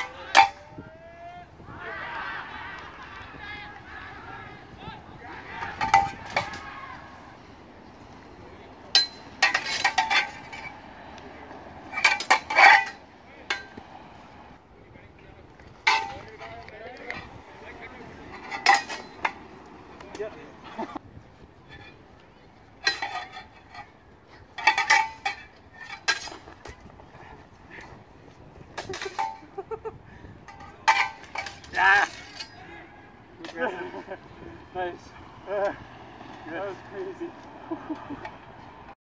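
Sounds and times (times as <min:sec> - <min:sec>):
steel blades clashing: 0:08.9 - 0:10.7, 0:18.4 - 0:19.4.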